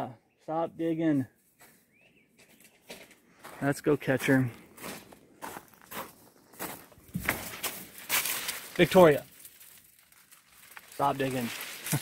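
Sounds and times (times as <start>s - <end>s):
footsteps on gravel: 1.1s - 12.0s.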